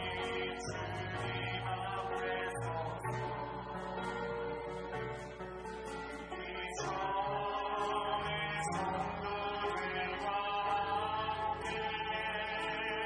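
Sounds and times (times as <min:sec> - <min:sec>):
group singing worship song: 0:00.0 - 0:05.4, 0:06.2 - 0:13.0
acoustic guitar: 0:00.0 - 0:13.0.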